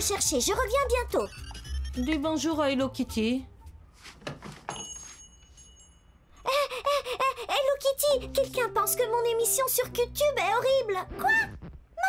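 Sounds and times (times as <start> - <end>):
cartoon character squeaking: 0.7 - 2.2.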